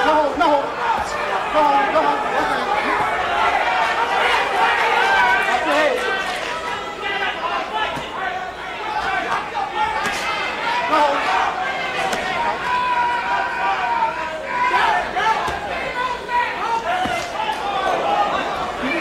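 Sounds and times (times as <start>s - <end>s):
crowd shouting and talking: 0.0s - 19.0s.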